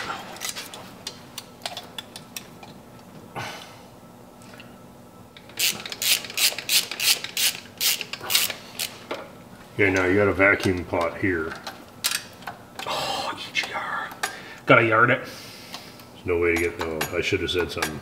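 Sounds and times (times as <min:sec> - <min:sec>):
metal tools clicking and rattling: 0:16.5 - 0:18.0.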